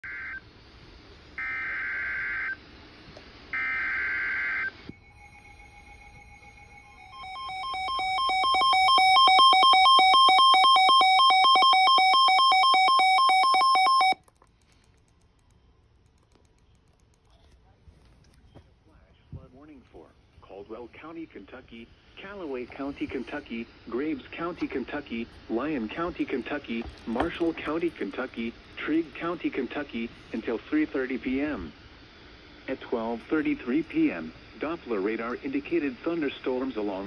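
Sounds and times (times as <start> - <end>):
harsh digital data buzz: 3.5 - 14.2
rapid pulsing alarm beep: 3.6 - 14.2.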